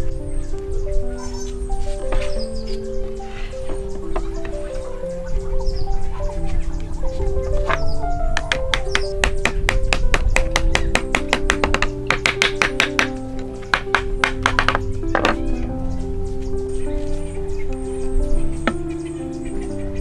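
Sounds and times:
background music: 0.0s - 20.0s
hammer tapping on wood: 7.6s - 15.4s.

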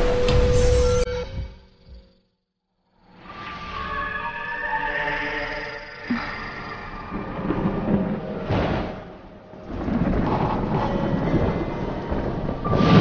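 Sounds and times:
thunder rumbling: 7.1s - 13.0s
steady rain: 7.3s - 13.0s.

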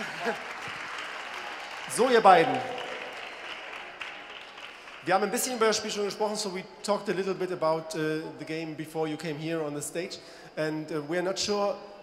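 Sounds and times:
audience applause: 0.0s - 5.6s.

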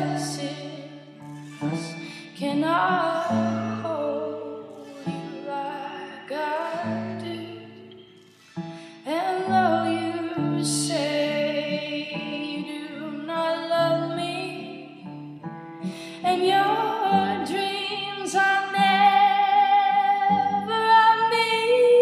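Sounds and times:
woman singing long notes: 0.0s - 7.8s
plucked-string accompaniment: 0.0s - 21.1s.

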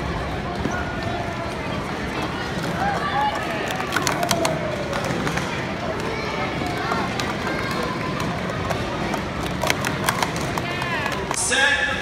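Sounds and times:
chatter of many voices: 0.0s - 12.0s
plastic cups clicking: 2.9s - 6.1s, 6.7s - 11.4s.

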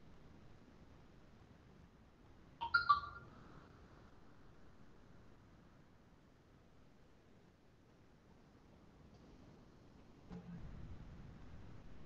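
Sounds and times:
computer notification chime: 2.6s - 3.2s.

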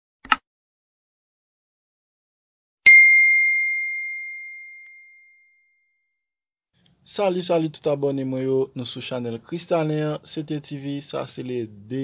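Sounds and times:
notification bell ding: 2.9s - 5.6s.

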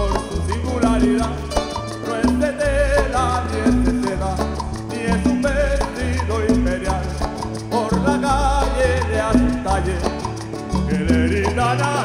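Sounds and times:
folk group playing: 0.0s - 12.0s.

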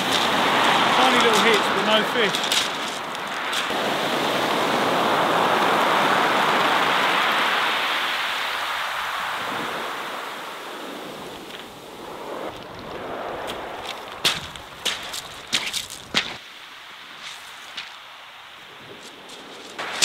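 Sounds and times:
footsteps on pebbles: 0.0s - 3.8s, 12.5s - 16.4s, 17.1s - 18.0s, 18.8s - 20.0s
wave washing on shingle beach: 0.0s - 20.0s.

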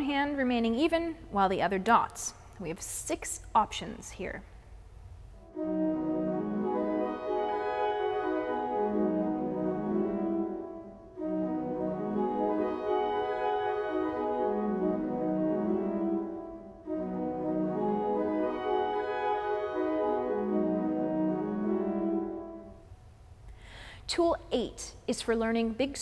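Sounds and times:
pipe organ playing scales: 5.4s - 22.8s.

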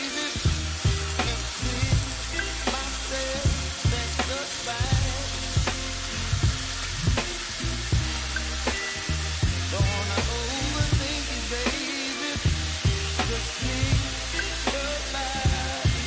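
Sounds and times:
background music with a beat: 0.0s - 16.0s
meat sizzling in a pan: 0.0s - 16.0s.

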